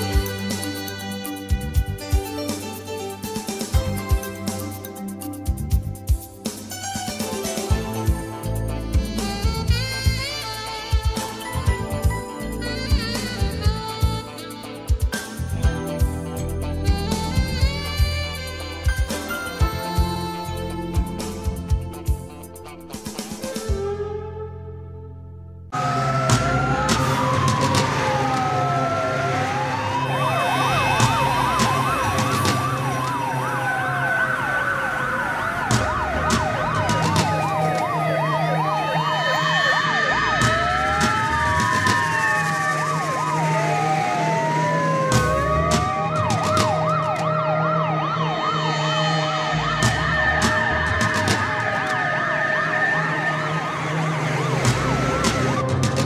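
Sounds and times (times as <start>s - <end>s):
fire engine sirens wailing: 0.0s - 5.4s, 6.6s - 22.2s, 25.7s - 56.0s.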